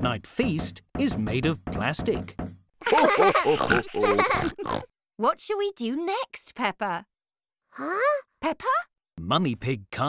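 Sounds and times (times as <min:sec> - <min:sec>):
cartoon characters laughing: 0:02.8 - 0:04.9
pig snorts: 0:03.6 - 0:04.9.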